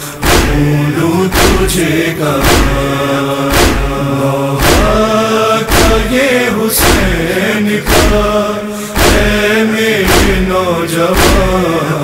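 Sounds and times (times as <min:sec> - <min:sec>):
heavy drum beat: 0:00.0 - 0:12.0
man chanting a slow lament: 0:00.0 - 0:12.0.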